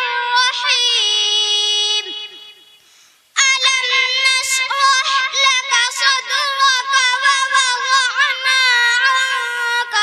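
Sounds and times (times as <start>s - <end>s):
girl chanting into a microphone: 0.0s - 2.6s, 3.3s - 10.0s.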